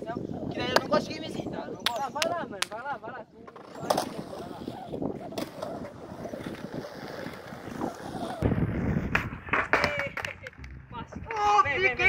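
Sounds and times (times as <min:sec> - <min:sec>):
skateboard wheels rolling on concrete: 0:02.2 - 0:12.0
skateboard clacking on concrete: 0:09.1 - 0:10.8.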